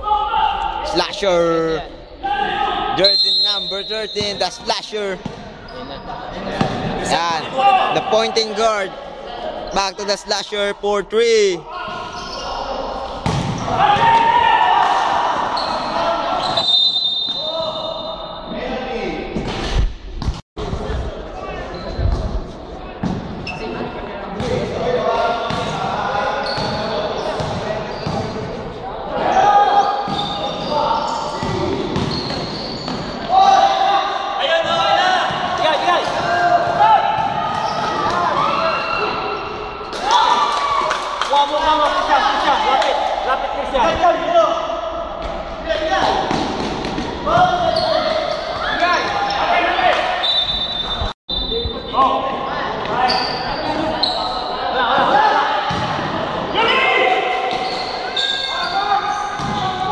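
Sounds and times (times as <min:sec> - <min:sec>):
players calling out: 0:23.4 - 0:59.9.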